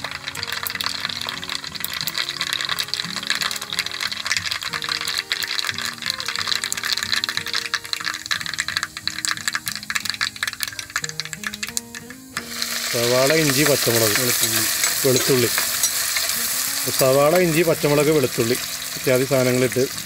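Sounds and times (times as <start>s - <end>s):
background music: 0.0s - 20.0s
hot oil sizzling and popping: 0.0s - 20.0s.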